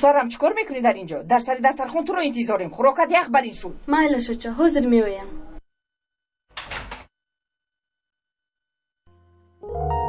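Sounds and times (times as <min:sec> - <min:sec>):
wooden door shutting: 0:06.6 - 0:07.1.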